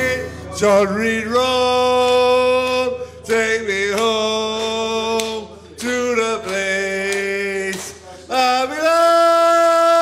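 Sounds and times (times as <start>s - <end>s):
man singing long held notes: 0.0s - 10.0s.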